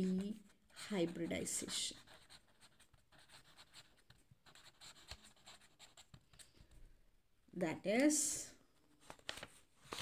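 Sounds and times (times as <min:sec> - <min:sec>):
marker scratching on paper: 0:00.0 - 0:06.2.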